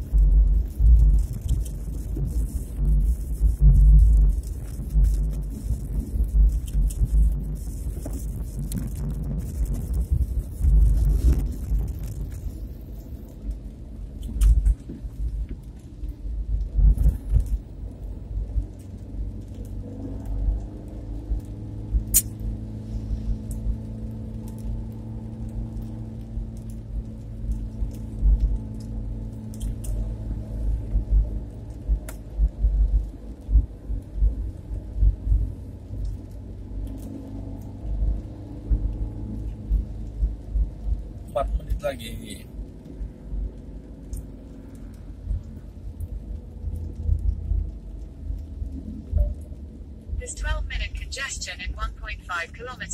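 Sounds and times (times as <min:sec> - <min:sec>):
car engine hum: 0:00.0 - 0:52.9
low road rumble: 0:00.0 - 0:52.9.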